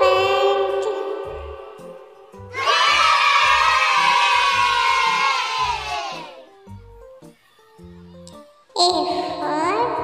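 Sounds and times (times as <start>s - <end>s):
children's song music: 0.0s - 10.0s
children cheering: 2.5s - 6.5s.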